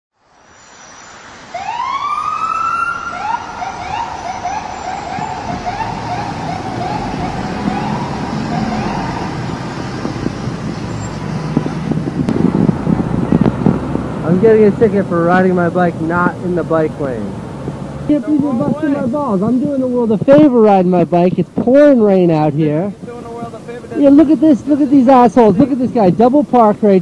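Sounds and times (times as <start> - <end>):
wet street traffic: 0.1 - 27.0
police siren wailing and yelping: 1.5 - 9.8.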